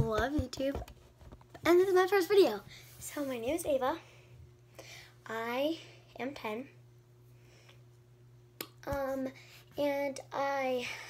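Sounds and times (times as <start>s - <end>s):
girl speaking: 0.0s - 0.9s, 1.6s - 4.1s, 5.2s - 6.8s, 8.8s - 11.0s
faint steady hum: 0.0s - 11.0s.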